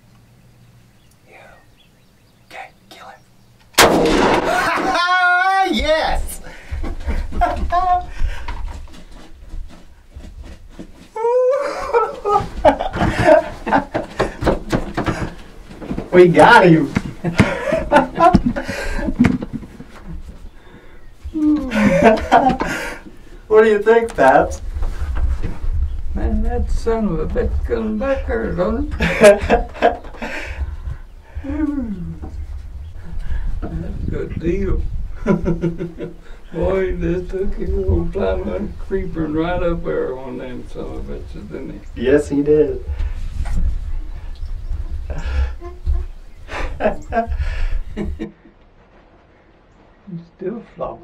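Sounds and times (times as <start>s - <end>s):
men exclaiming in excitement: 4.2s - 8.4s, 11.2s - 14.4s, 21.3s - 23.1s
men laughing: 4.2s - 9.0s, 11.2s - 16.0s, 16.9s - 23.2s, 28.7s - 32.2s, 35.1s - 36.8s, 45.0s - 48.6s.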